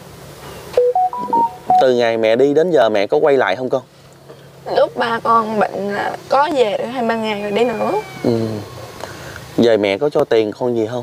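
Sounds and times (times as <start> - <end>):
slow keyboard melody: 0.8 - 2.0
man speaking: 1.3 - 3.9, 8.2 - 8.8.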